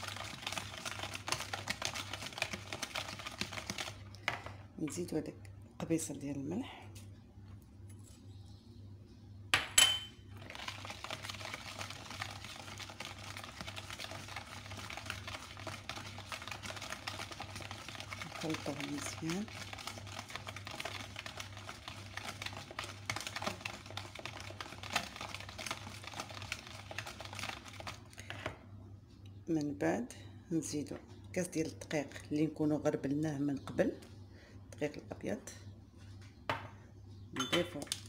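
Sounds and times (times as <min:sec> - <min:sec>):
whisk beating batter in a bowl: 0:00.0 - 0:04.2, 0:10.4 - 0:28.1.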